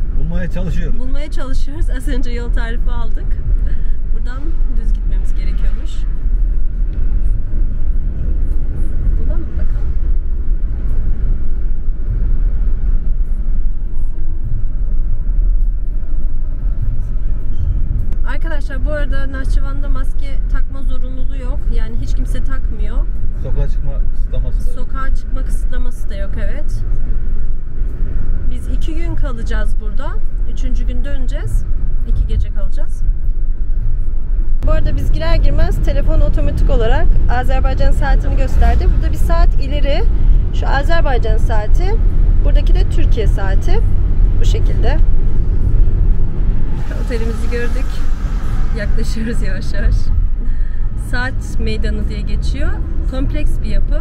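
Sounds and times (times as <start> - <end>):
car driving rumble inside cabin: 0.0 - 54.0.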